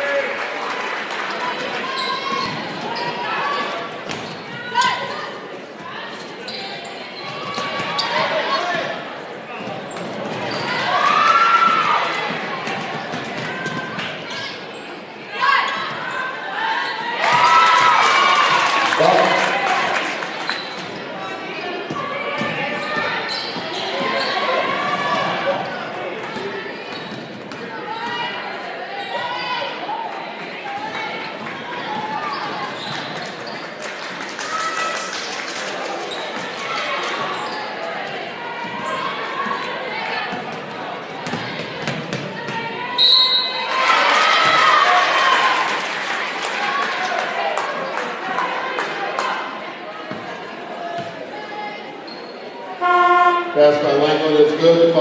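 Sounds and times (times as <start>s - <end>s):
spectators' voices and shouts: 0.0s - 55.0s.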